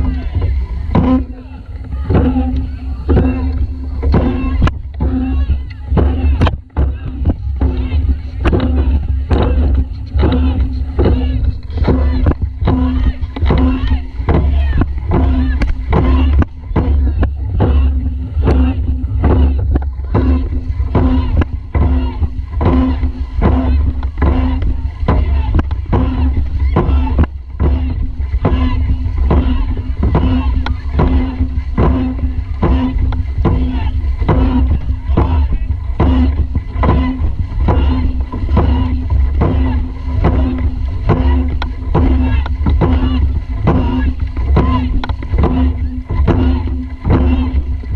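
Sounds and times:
paddles splashing in water: 0.0s - 47.9s
water rushing past hull: 0.0s - 47.9s.

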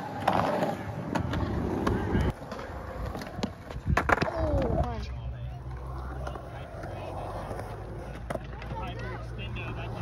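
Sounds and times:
skateboard clacking: 0.0s - 10.0s
skateboard wheels rolling: 0.0s - 10.0s.

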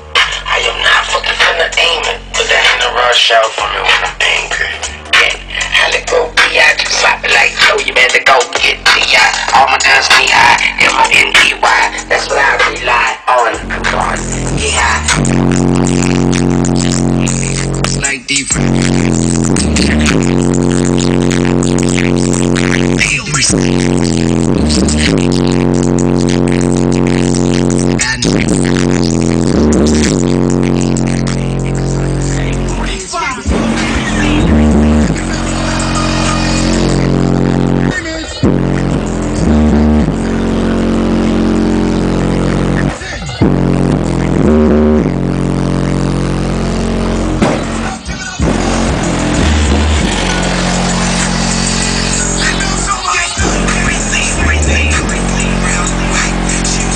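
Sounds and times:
loud music through car speakers: 0.0s - 56.9s.

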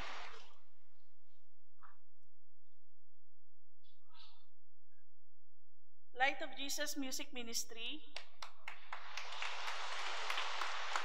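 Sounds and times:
crowd clapping: 8.2s - 11.0s.

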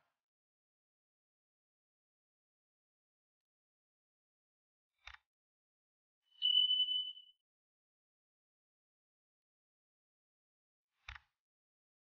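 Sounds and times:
notification bell ding: 6.4s - 7.3s.

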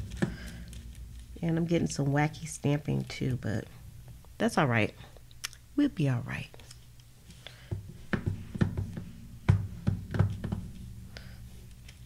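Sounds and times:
stamp block knocking on surface: 7.7s - 10.7s.

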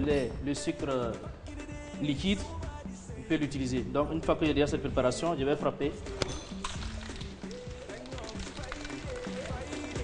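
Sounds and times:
background music: 0.0s - 10.0s
cocktail shaker rattling ice: 6.6s - 10.0s.

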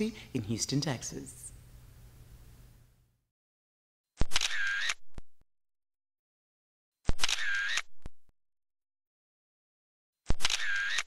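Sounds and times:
camera shutter clicking and whirring: 4.2s - 5.3s, 7.1s - 8.2s, 10.3s - 11.0s.

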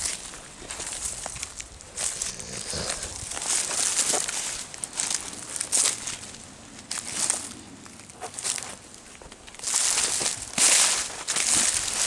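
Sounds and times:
footsteps crunching dry leaves: 0.0s - 12.0s.

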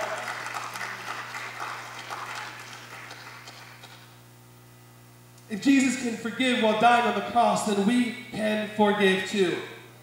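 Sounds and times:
congregation applauding: 0.0s - 4.2s.

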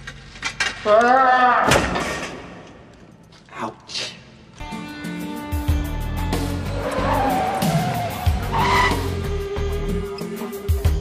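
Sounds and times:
background music: 3.2s - 11.0s
car tyres squealing: 6.6s - 9.5s.

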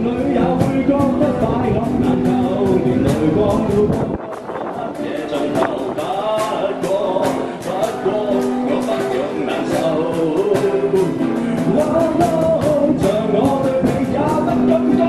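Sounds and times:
cajon beat: 0.0s - 15.0s
man singing pop song: 0.0s - 15.0s
strummed acoustic guitar: 0.0s - 15.0s.

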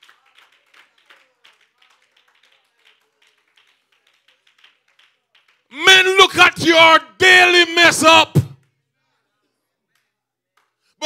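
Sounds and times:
scattered hand claps: 0.0s - 5.8s.

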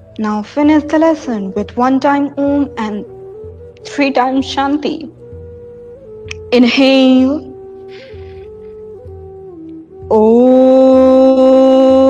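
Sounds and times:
woman chanting om: 10.0s - 12.0s.

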